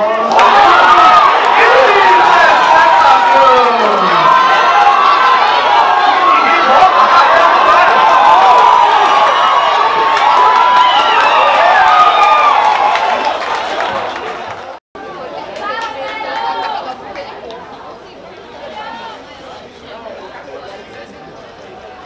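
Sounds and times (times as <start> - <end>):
crowd shouting and chattering: 0.0 - 22.0.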